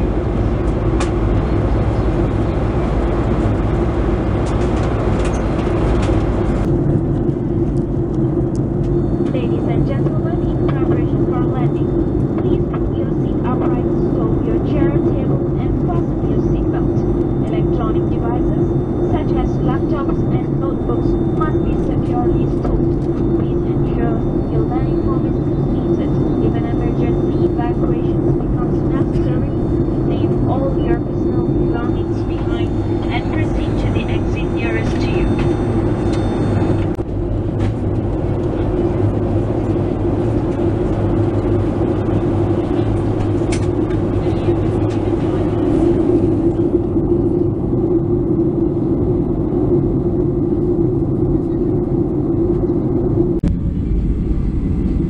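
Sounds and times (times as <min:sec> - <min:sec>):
aircraft engines droning: 0:00.0 - 0:55.0.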